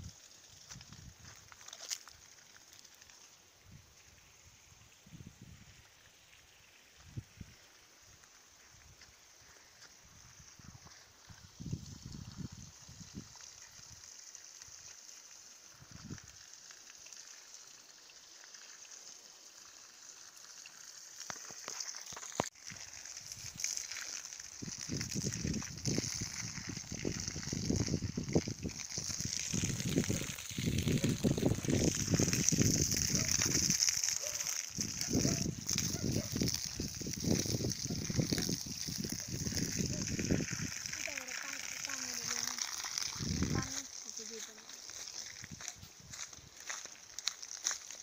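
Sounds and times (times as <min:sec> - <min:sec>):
garden hose spraying water: 0:00.0 - 0:48.0.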